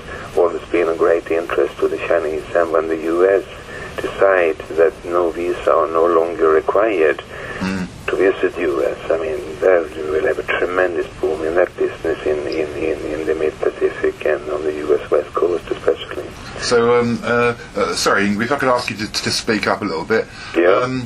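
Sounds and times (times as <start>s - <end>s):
person talking: 0.0s - 21.0s.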